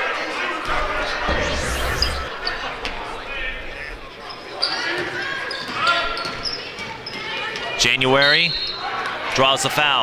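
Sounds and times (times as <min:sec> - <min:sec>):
voices of players and crowd: 0:00.0 - 0:10.0.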